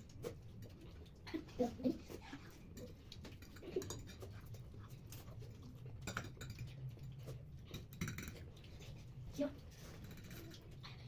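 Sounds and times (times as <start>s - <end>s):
forks clicking and scraping plates: 0.0s - 11.0s.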